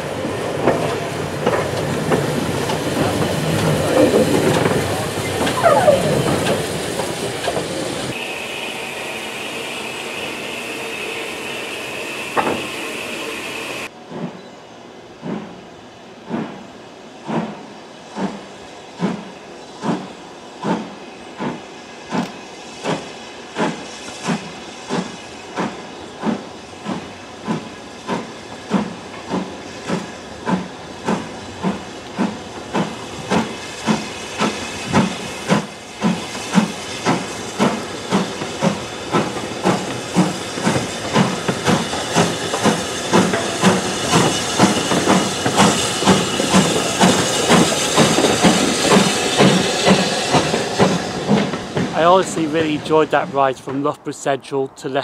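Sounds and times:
steam hiss: 0.0 - 14.3, 16.2 - 54.6
steam locomotive exhaust beats: 0.0 - 14.4, 15.2 - 54.8.

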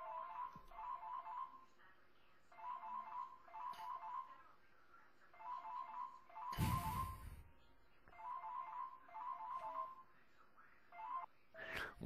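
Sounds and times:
faint electronic melody: 0.0 - 11.7.

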